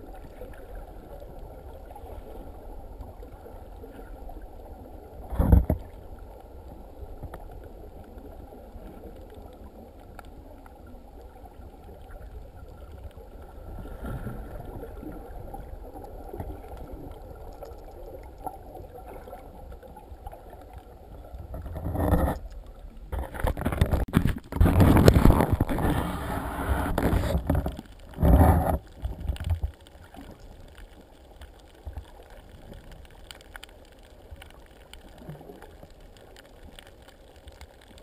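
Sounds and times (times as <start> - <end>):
underwater rumble and hiss: 0.0 - 38.0.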